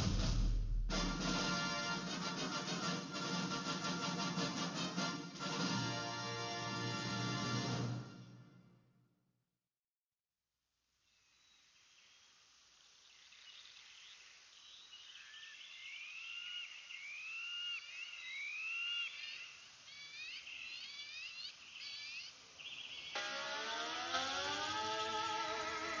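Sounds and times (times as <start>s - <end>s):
birds chirping: 11.4s - 24.4s.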